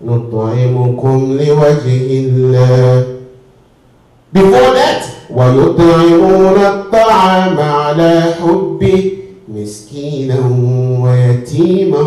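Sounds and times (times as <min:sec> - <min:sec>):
man chanting melodically: 0:00.0 - 0:03.4, 0:04.3 - 0:12.0.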